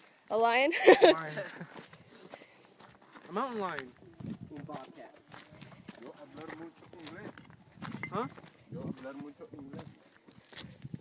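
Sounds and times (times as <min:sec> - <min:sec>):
footsteps on rocky ground: 0:01.1 - 0:11.0.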